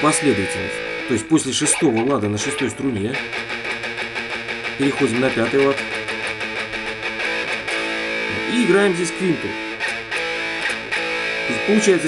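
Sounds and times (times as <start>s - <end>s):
electric guitar picking low strings: 0.0s - 12.0s.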